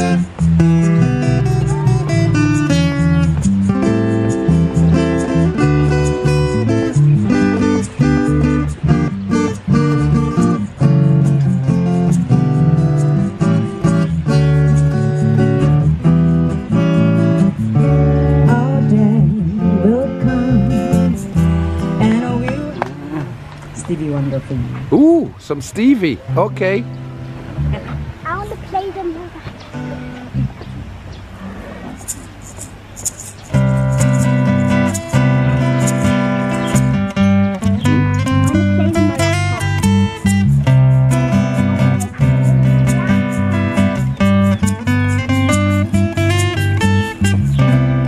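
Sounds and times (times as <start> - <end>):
guitar strumming chords: 0.0 - 24.9, 25.8 - 31.1, 32.1 - 48.0
electric bass: 0.0 - 28.8, 29.5 - 31.4, 33.5 - 48.0
person singing: 18.3 - 23.4
maraca shakes: 32.0 - 36.9.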